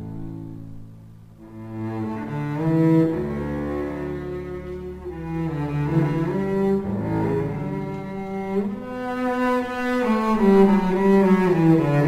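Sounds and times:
bowed double basses: 0.0 - 12.0.

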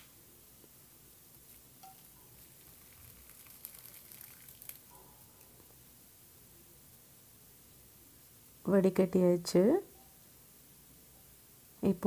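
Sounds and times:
syrup pouring through strainer: 1.3 - 4.9.

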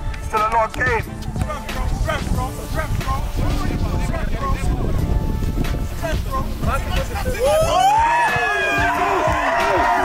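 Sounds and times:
wind rumble on microphone: 0.0 - 7.9
spectators shouting: 7.4 - 10.0.

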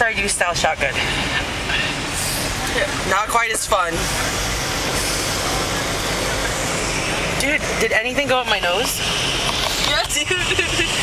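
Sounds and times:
engine and road rumble: 0.0 - 11.0
tyres hissing on wet road: 0.0 - 11.0.

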